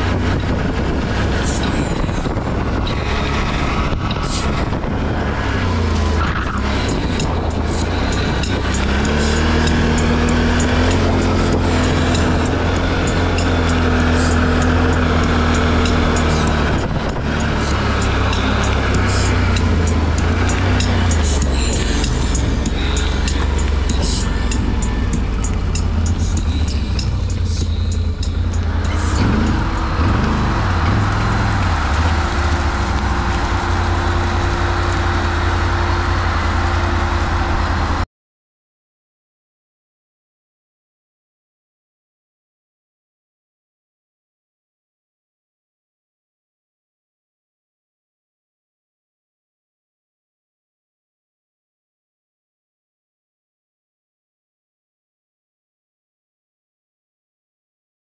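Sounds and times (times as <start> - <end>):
quad bike engine running: 0.0 - 38.0.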